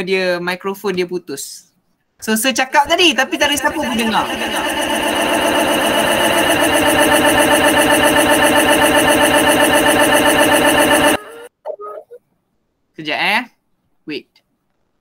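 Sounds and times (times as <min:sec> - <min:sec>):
electronic feedback buzz: 0:03.4 - 0:11.5.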